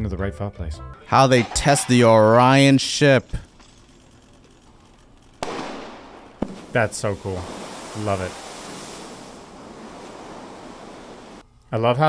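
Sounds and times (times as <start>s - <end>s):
capsule splashing into water: 5.4s - 11.4s.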